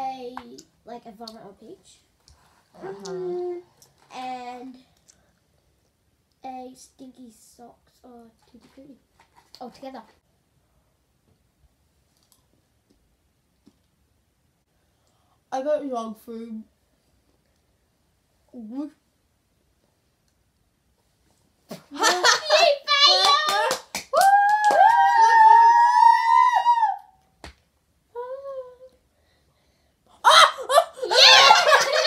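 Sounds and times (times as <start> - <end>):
girls laughing: 21.9 - 23.1, 30.2 - 32.0
sharp hand claps: 22.1 - 25.3.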